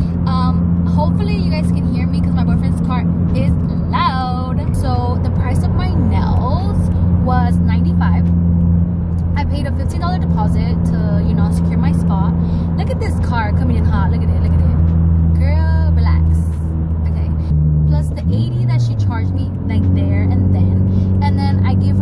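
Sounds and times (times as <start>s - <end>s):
woman talking: 0.0s - 8.3s, 9.3s - 22.0s
car engine drone and road noise: 0.0s - 22.0s.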